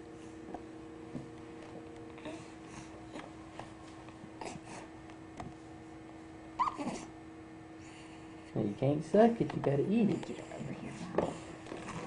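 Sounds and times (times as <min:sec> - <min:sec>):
faint steady hum: 0:00.0 - 0:12.0
baby squeaking: 0:06.6 - 0:07.1.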